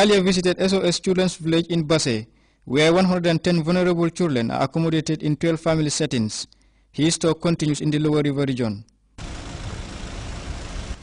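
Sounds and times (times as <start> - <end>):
outdoor rumble and hiss: 9.2 - 11.0.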